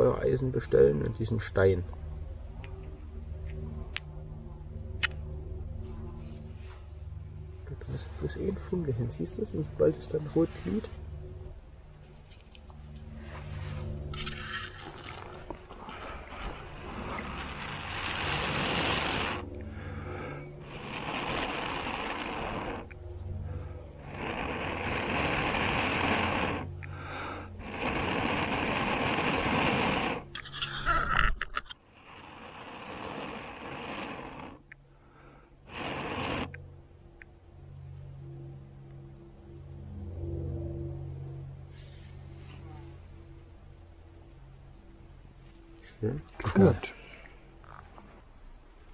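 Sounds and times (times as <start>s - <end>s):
crackling rustle: 12.0s - 19.7s, 20.5s - 26.9s
person blowing on ember: 13.1s - 31.3s, 31.9s - 36.8s.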